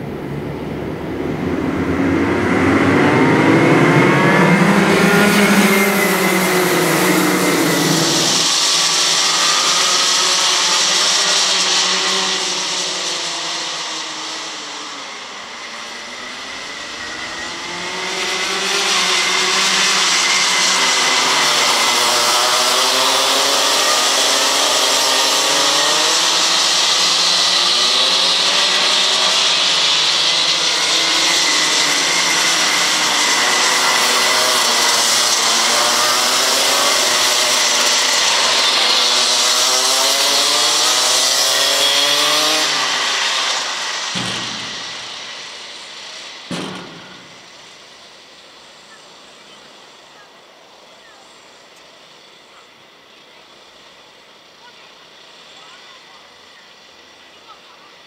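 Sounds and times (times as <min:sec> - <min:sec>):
kart engines at full throttle: 0:00.0 - 0:58.0.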